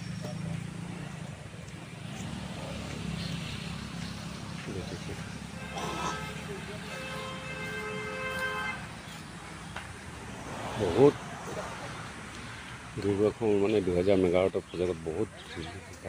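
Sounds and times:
vehicle horn: 5.4 - 9.0.

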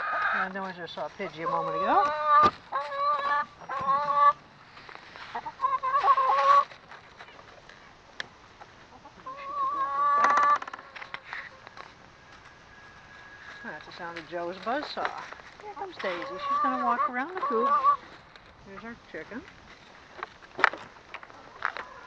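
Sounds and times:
hens squawking and cackling: 0.0 - 7.7, 8.4 - 22.0.

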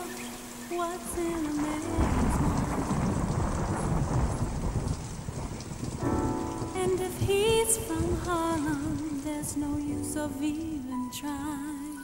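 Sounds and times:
rain and rolling thunder: 0.0 - 12.0.

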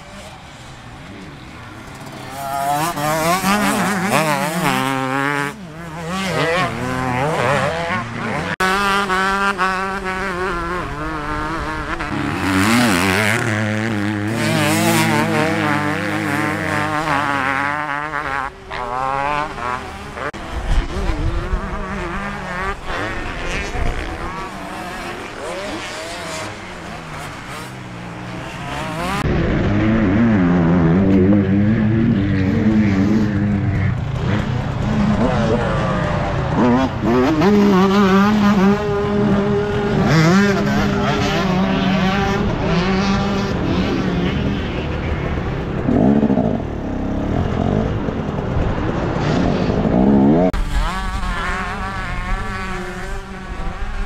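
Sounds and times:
dirt bikes riding past: 0.0 - 54.0
two-stroke engine revving close up: 1.1 - 48.5, 49.4 - 54.0.

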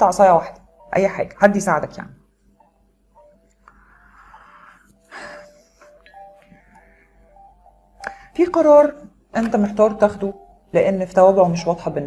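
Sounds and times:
slow bell-like melody: 0.0 - 12.0.

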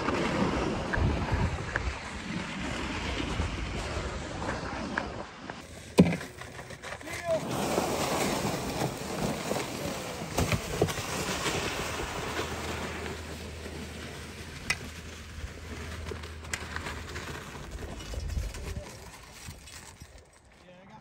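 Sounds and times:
sleds scraping over icy snow: 0.0 - 21.0.

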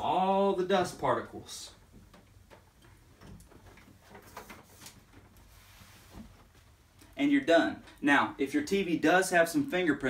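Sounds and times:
cloth wiping a screen: 4.2 - 6.8.

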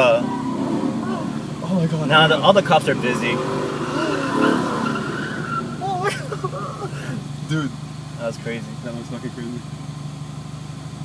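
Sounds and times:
tires skidding on wet pavement: 0.0 - 7.7
car engine running hard: 0.0 - 11.0.

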